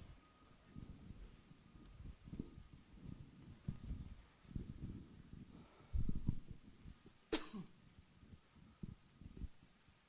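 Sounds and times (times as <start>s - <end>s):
person coughing: 7.3s - 7.7s.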